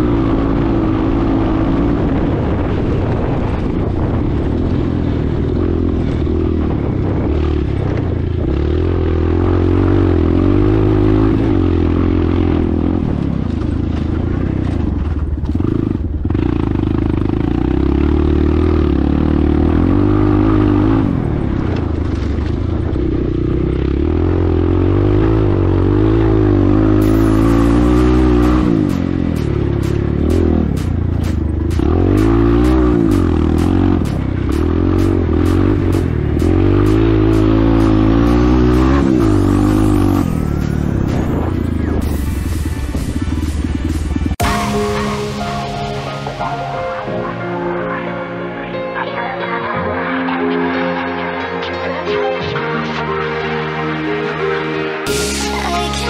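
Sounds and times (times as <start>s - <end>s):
dirt bike engine revving: 5.4s - 44.7s.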